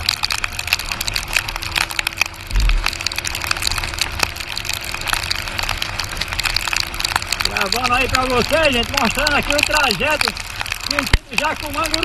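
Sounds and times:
raindrops ticking on microphone: 0:00.0 - 0:12.0
wind and road noise: 0:00.0 - 0:12.0.

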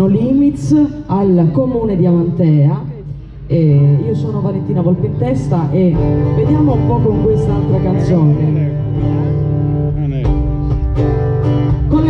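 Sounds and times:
acoustic guitar chords: 0:03.9 - 0:12.0.

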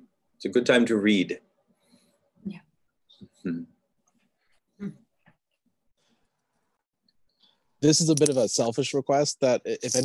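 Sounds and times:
person speaking: 0:07.8 - 0:10.0.

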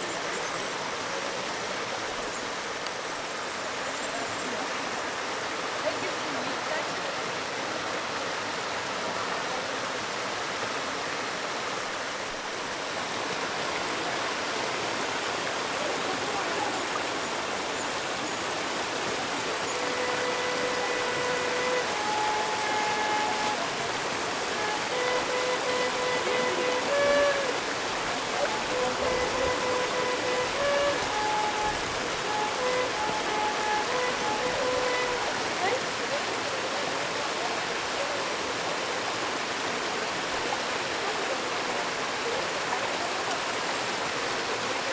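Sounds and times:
water rushing over rocks: 0:00.0 - 0:44.9
simple tune of held notes: 0:19.7 - 0:27.7, 0:28.4 - 0:35.8.

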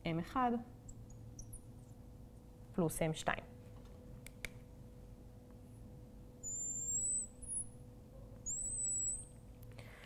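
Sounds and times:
marker squeaking on glass: 0:06.4 - 0:07.7, 0:08.4 - 0:09.4.

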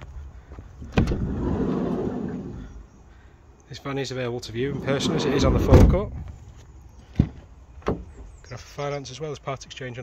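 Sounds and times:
sliding door rumbling open: 0:01.0 - 0:02.7, 0:04.6 - 0:06.1
van door unlatching clack: 0:04.8 - 0:06.2.

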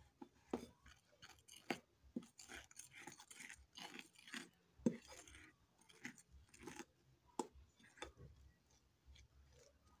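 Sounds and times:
fork scraping through flour: 0:00.0 - 0:07.0, 0:07.7 - 0:10.0.

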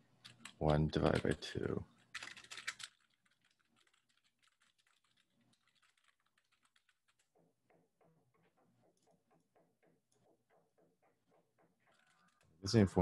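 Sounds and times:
typing on computer keyboard: 0:00.2 - 0:09.1, 0:11.8 - 0:12.6.

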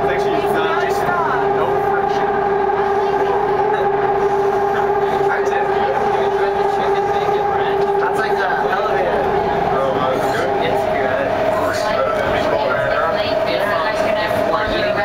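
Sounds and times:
train whine: 0:00.0 - 0:15.0
wheels rumbling on rail: 0:00.0 - 0:15.0.

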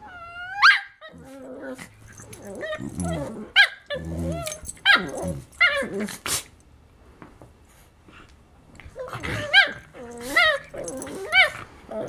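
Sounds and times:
puppy yipping: 0:00.4 - 0:01.1
dog growling: 0:01.0 - 0:06.3, 0:09.0 - 0:12.0.

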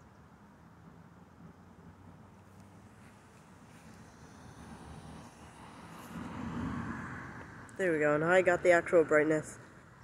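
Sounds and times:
vehicle passing on road: 0:00.1 - 0:10.0.

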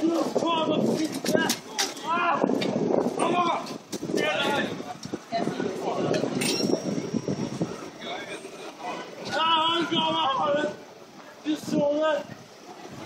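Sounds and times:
man shouting: 0:02.0 - 0:02.5, 0:03.2 - 0:03.6, 0:09.3 - 0:10.8.

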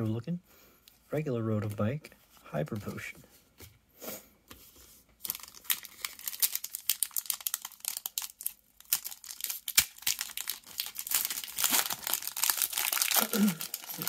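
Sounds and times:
foil wrapper crinkling and tearing: 0:05.2 - 0:14.0.

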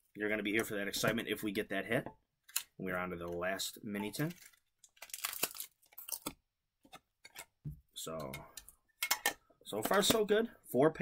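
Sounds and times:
trading cards being handled: 0:02.4 - 0:07.6
foil wrapper crinkling: 0:04.1 - 0:06.4.

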